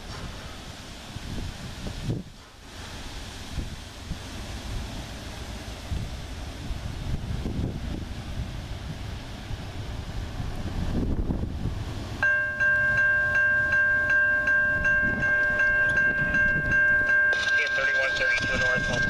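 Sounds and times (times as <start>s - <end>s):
freight train rumble: 0.0s - 19.0s
wind: 0.0s - 19.0s.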